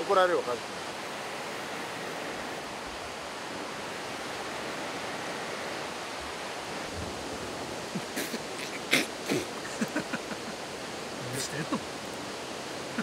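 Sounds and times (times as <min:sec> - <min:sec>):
river rushing: 0:00.0 - 0:13.0.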